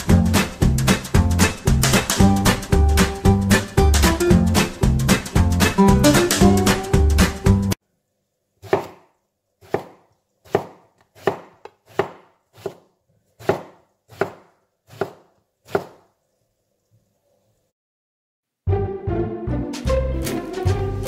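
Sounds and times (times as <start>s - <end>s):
guitar music: 0.0s - 7.8s
knife slicing on wooden board: 8.6s - 16.0s.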